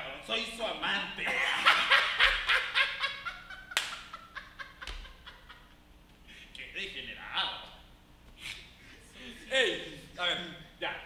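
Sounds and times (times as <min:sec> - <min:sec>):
hearty laughter: 0:01.3 - 0:05.8.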